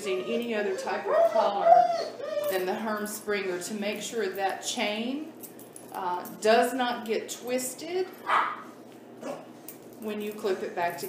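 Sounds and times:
dog barking: 0:08.3 - 0:08.6.

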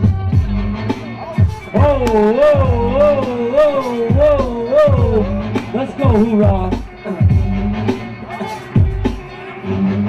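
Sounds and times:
music over sound system: 0:00.0 - 0:10.0.

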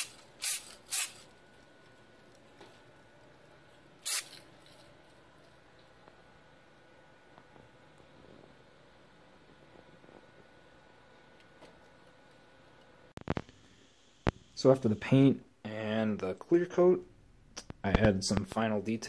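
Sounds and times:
aerosol spray can hiss: 0:00.0 - 0:01.3, 0:04.0 - 0:04.4.

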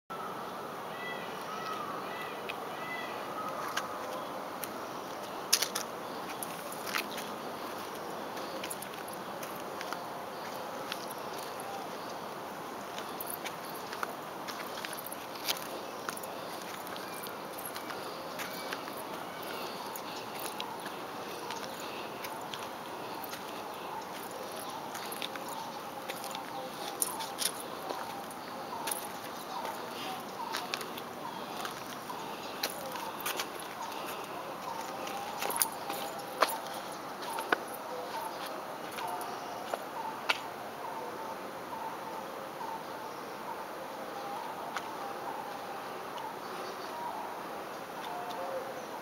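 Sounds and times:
faint high-pitched calls: 0:00.1 - 0:04.4
outdoor background noise: 0:00.1 - 0:49.0.

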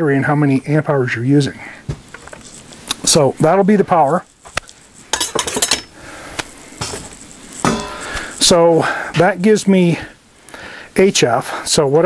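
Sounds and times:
hard objects clattering on workbench: 0:05.2 - 0:05.9.

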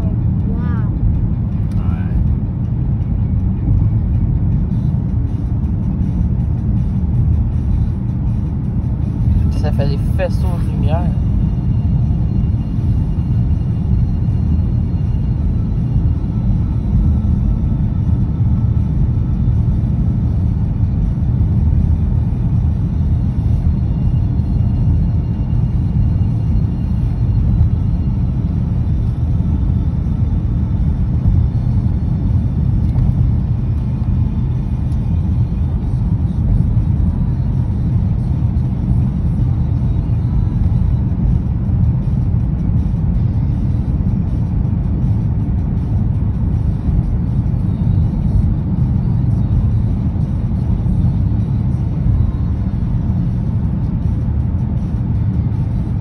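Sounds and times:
car road rumble inside cabin: 0:00.0 - 0:56.0.

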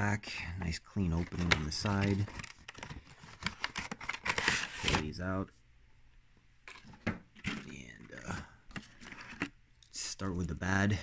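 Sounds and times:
plastic packaging crinkling: 0:01.1 - 0:05.2.

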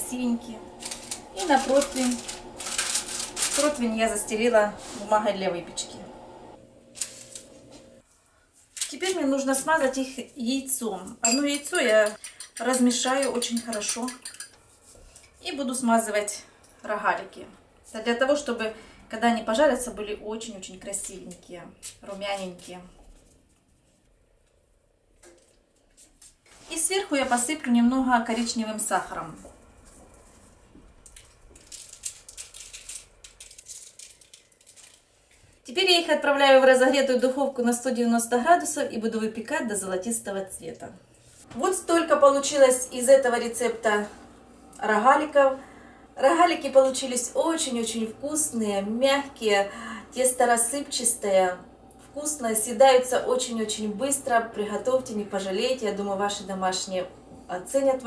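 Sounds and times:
dough rolling on baking mat: 0:00.0 - 0:08.0
faint room hum: 0:00.0 - 0:58.0
sugar grains pattering on paper: 0:00.8 - 0:05.2, 0:31.1 - 0:35.1.

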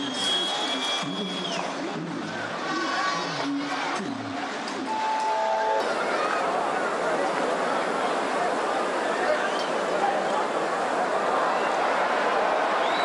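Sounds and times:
high whistle: 0:00.0 - 0:01.6
stadium crowd voices: 0:00.0 - 0:13.0
short tone: 0:04.9 - 0:05.9.

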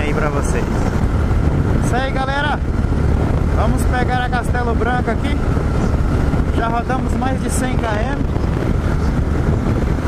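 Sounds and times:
motorcycle engine cruising: 0:00.0 - 0:10.0
wind rushing over microphone: 0:00.0 - 0:10.0.

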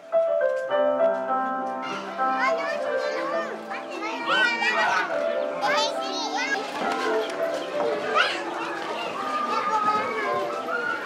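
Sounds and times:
background music with held notes: 0:00.0 - 0:11.0
children shouting and chattering: 0:00.8 - 0:11.0.

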